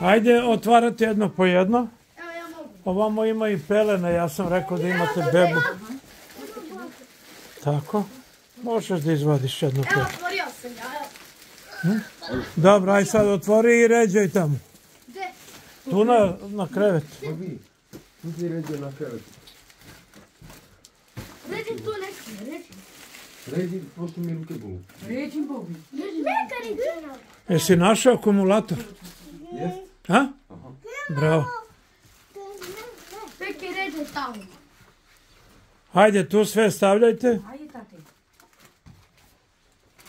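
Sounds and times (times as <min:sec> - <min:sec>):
plastic bags rustling: 0:00.0 - 0:29.9, 0:31.1 - 0:40.0
faint handling sounds: 0:02.0 - 0:29.9, 0:31.6 - 0:36.0, 0:37.4 - 0:40.0.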